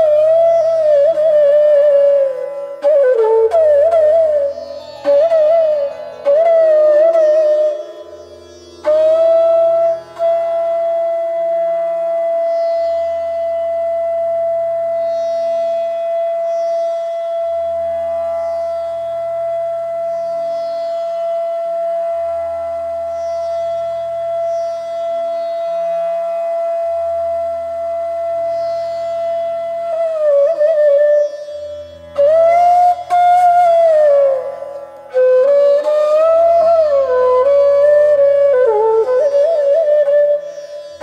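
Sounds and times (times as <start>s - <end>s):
bamboo flute long note: 0.0s - 41.0s.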